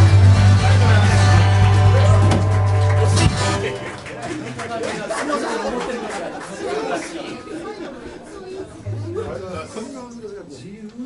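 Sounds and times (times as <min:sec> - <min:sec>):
chatter of voices: 0:03.0 - 0:11.0.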